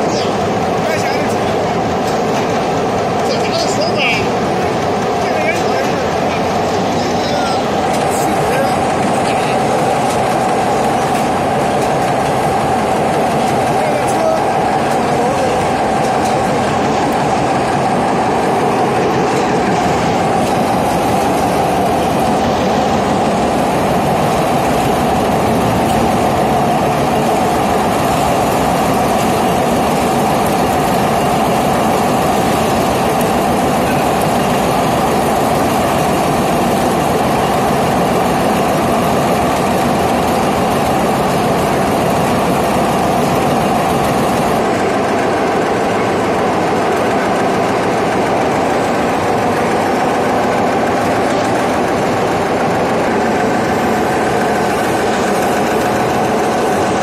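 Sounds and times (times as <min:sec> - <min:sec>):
spinning machine mechanical din: 0:00.0 - 0:57.0.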